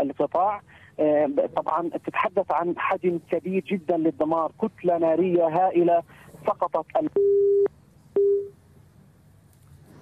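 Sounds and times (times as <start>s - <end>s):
telephone busy tone beeps: 7.2s - 8.5s.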